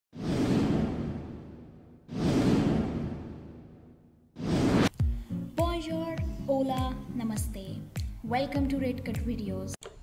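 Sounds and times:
whoosh sound effects: 0:00.2 - 0:04.9.

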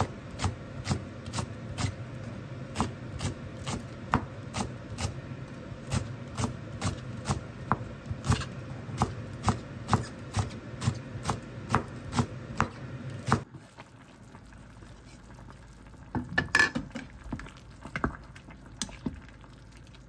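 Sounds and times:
soup simmering in a pot: 0:00.0 - 0:20.0
knife chopping on plastic board: 0:06.4 - 0:13.4.

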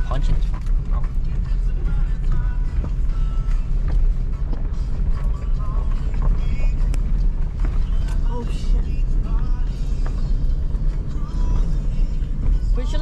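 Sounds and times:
music playing: 0:00.0 - 0:13.0
truck rumbling on dirt road: 0:00.0 - 0:13.0.

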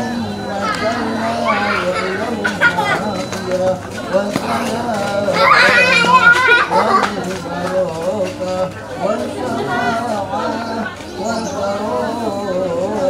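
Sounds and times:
children's high voices: 0:00.0 - 0:03.4, 0:04.1 - 0:07.4
men murmuring a prayer: 0:00.0 - 0:13.0.

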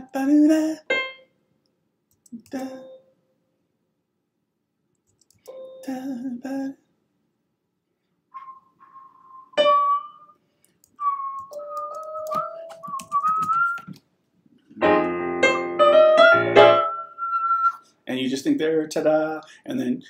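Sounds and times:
electronic keyboard chords: 0:08.3 - 0:13.8, 0:14.8 - 0:17.7.

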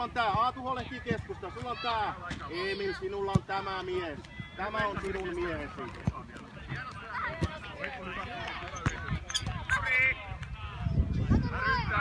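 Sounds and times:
ball being kicked: 0:03.2 - 0:03.8, 0:04.7 - 0:08.0.

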